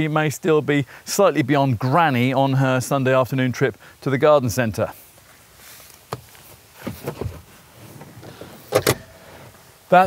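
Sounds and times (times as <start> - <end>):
clothing rustle: 5.0 - 9.7
soft bumps against seat: 6.1 - 9.0
sharp clunks: 6.1 - 9.2.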